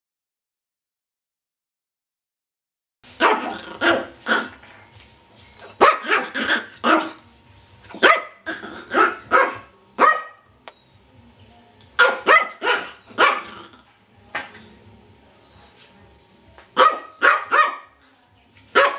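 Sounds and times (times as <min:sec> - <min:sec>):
small dog barking: 0:03.2 - 0:04.6, 0:05.6 - 0:07.2, 0:07.9 - 0:10.5, 0:12.0 - 0:13.7, 0:16.8 - 0:18.0.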